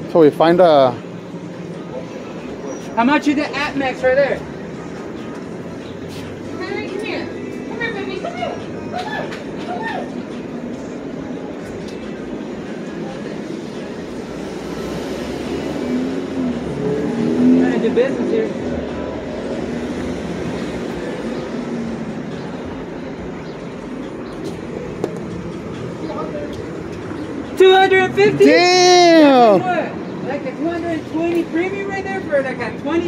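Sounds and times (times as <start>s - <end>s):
indistinct voices: 0.0s - 33.0s
traffic hum: 0.0s - 33.0s.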